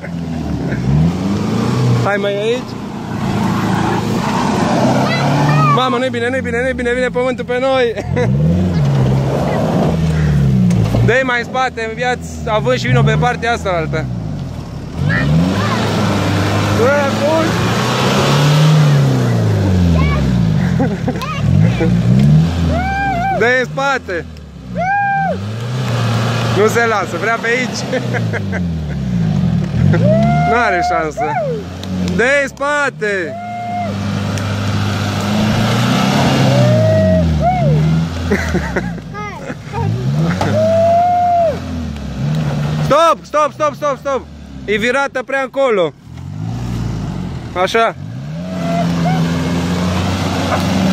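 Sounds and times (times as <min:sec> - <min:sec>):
car engine revving: 0:00.0 - 0:50.9
tyres churning in mud: 0:00.0 - 0:50.9.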